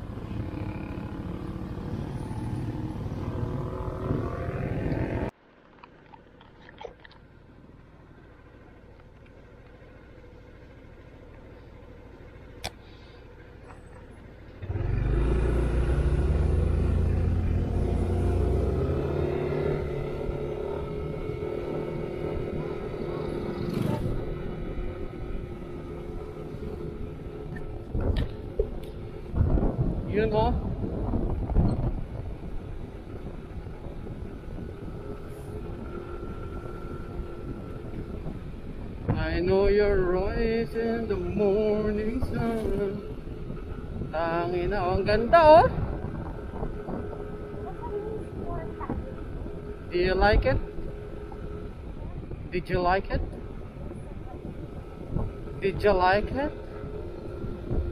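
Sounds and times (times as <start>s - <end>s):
scooter engine running: 8.6s - 29.4s
wind rumble on microphone: 14.6s - 57.9s
person's voice: 30.0s - 30.6s, 39.1s - 43.0s, 44.2s - 45.8s, 49.9s - 50.7s, 55.6s - 56.6s.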